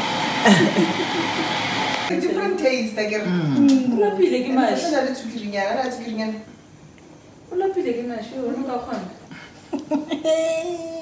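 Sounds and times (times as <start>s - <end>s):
blower or fan rushing: 0.0s - 2.4s.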